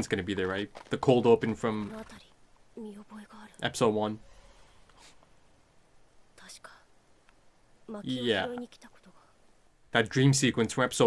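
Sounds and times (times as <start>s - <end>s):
faint whisper: 6.4s - 6.9s, 8.7s - 9.4s.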